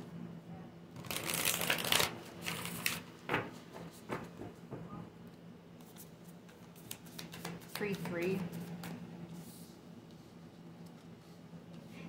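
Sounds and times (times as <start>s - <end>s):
cards riffle shuffling: 1.0s - 3.0s, 5.8s - 9.0s
cards tapping: 6.5s - 9.0s.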